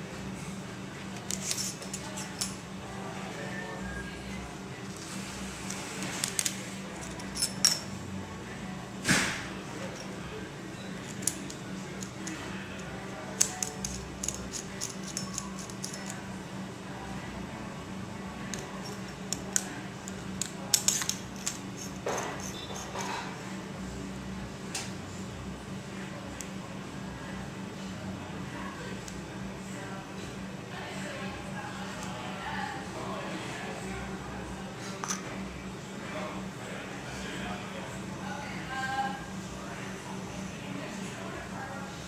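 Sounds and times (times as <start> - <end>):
steady low hum: 0.0 - 42.0
small metal parts clicking: 1.2 - 2.6, 6.2 - 7.8, 11.0 - 12.4, 13.4 - 16.2, 18.5 - 23.0.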